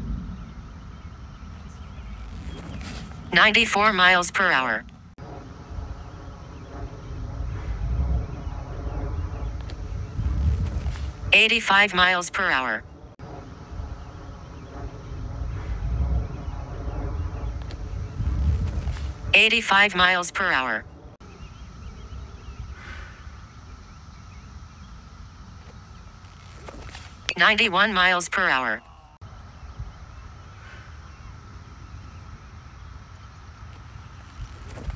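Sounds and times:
low outdoor rumble: 0.0s - 34.9s
faint bird chirps: 21.2s - 27.1s, 28.0s - 34.9s.

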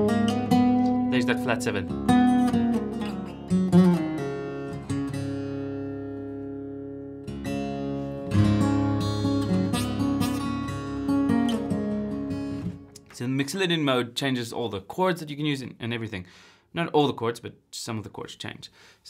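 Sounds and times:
acoustic guitar strumming: 0.0s - 13.2s.

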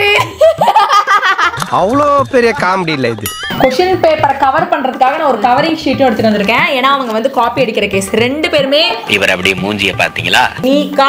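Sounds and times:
girls giggling: 0.0s - 1.6s.

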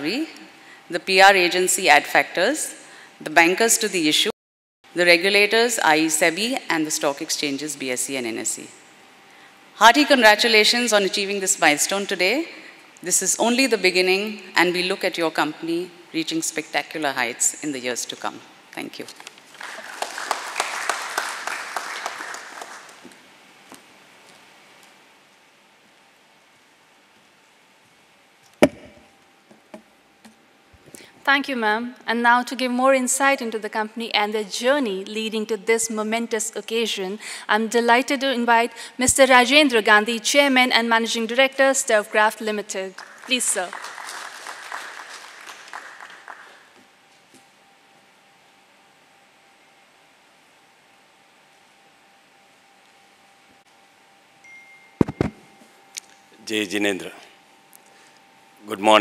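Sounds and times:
faint steady hiss: 4.9s - 59.0s
thin steady hum: 22.3s - 43.6s, 46.0s - 59.0s
loud thump on wooden lectern: 28.6s - 29.0s
microphone handling: 28.6s - 29.1s, 55.0s - 55.5s.

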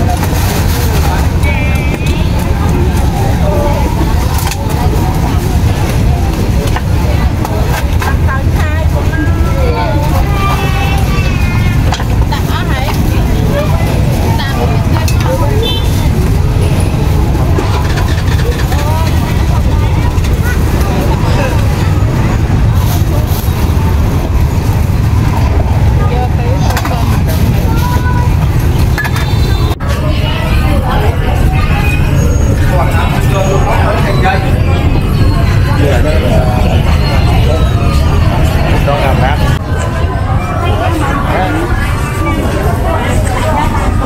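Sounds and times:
busy market voices: 0.0s - 44.0s
people talking indistinctly: 0.0s - 44.0s
road traffic rumble: 0.0s - 44.0s.

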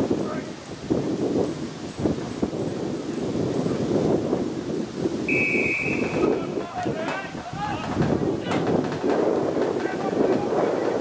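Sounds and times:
spectators talking: 0.0s - 11.0s
wind on microphone: 0.0s - 11.0s
whistle blast: 5.3s - 6.3s
people shouting: 6.0s - 8.6s.

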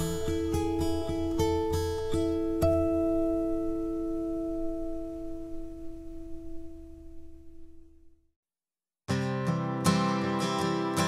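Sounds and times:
acoustic guitar chord ringing: 0.0s - 8.2s, 9.1s - 11.0s.

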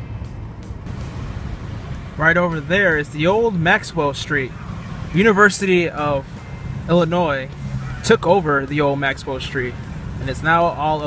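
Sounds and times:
car engine and road drone: 0.0s - 11.0s.

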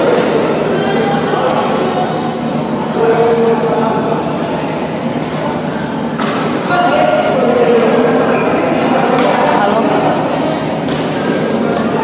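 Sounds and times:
rackets striking shuttlecock: 5.2s - 8.2s, 8.9s - 12.0s
shoes squeaking on floor: 8.2s - 8.9s, 9.5s - 12.0s.

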